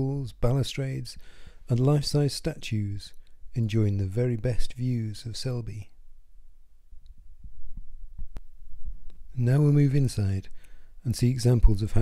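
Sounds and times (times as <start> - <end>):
rumble: 5.8 - 9.4.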